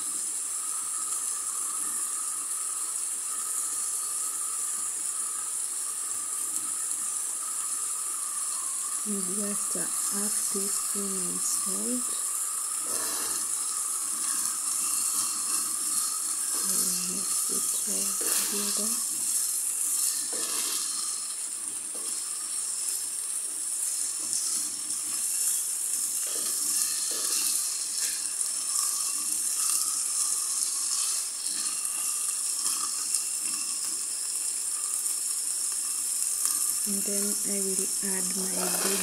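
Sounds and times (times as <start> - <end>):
meat and onions sizzling in a pan: 0.0 - 39.0.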